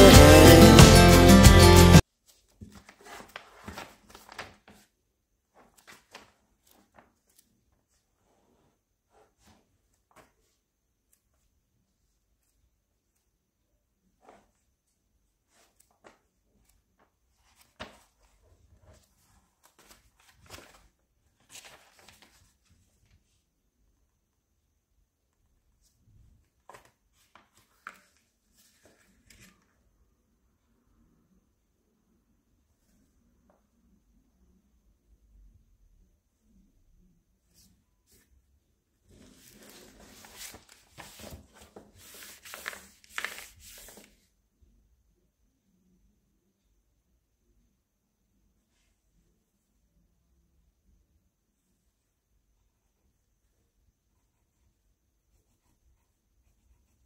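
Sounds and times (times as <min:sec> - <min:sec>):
book pages rustling: 0:02.1 - 0:11.5, 0:14.1 - 0:23.4, 0:25.8 - 0:29.8, 0:39.0 - 0:44.3.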